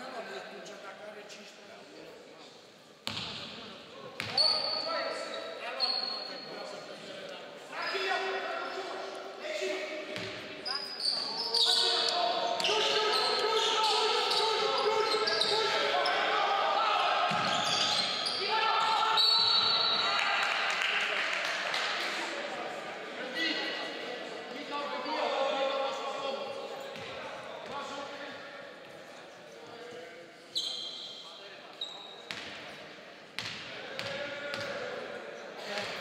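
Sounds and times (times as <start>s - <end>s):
basketball bouncing on wooden court: 3.0s - 3.4s
sneaker squeaks: 4.2s - 6.7s, 10.2s - 16.3s, 17.3s - 20.1s, 30.5s - 32.6s
people shouting in gym hall: 12.6s - 20.7s.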